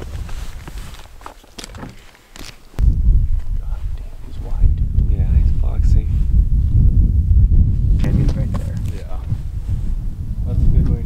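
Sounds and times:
wind buffeting microphone: 0:00.0 - 0:02.0, 0:02.7 - 0:11.0.

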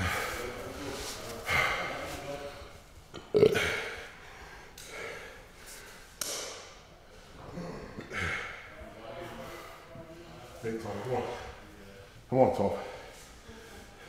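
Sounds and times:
man's breathy vocal sounds: 0:00.0 - 0:02.8.

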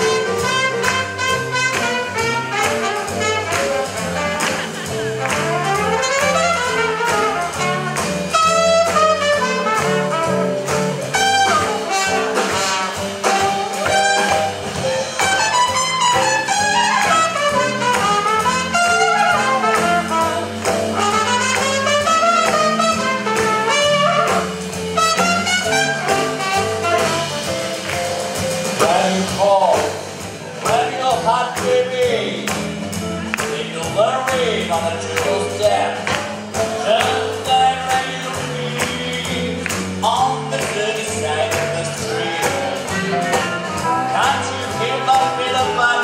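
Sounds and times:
swing jazz band playing: 0:00.0 - 0:46.0.

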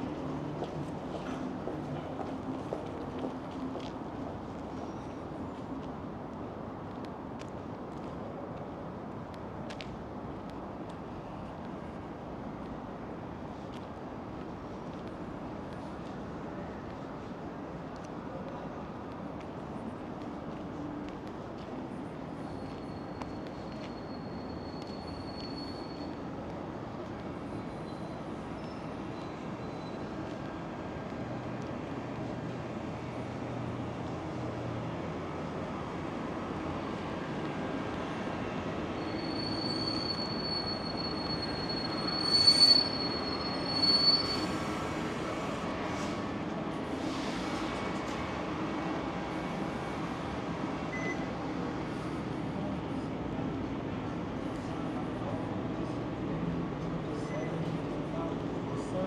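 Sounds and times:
brakes squealing: 0:22.4 - 0:26.4, 0:38.8 - 0:46.2.

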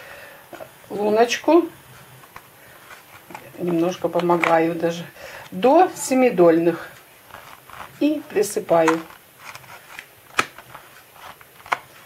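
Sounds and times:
plastic cup clicks: 0:08.8 - 0:09.2, 0:10.0 - 0:10.8.

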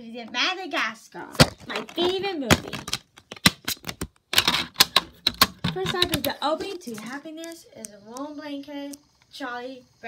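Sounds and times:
handling clicks and knocks: 0:01.3 - 0:07.2.

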